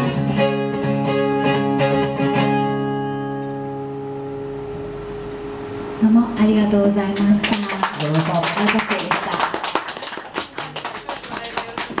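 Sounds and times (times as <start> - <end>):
small audience clapping: 7.2 - 12.0.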